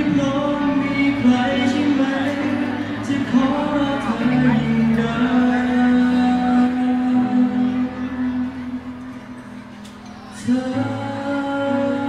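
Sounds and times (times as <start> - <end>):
backing track: 0.0 - 12.0.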